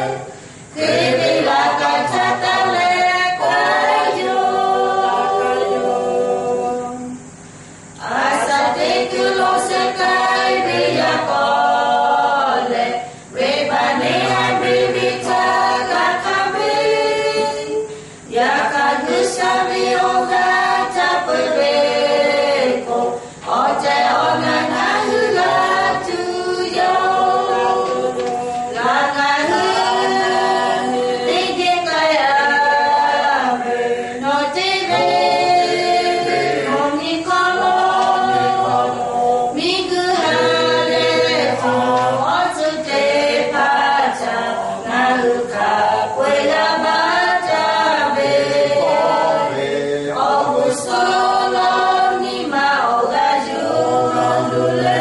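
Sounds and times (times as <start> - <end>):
group singing a cappella: 0.0 - 55.0.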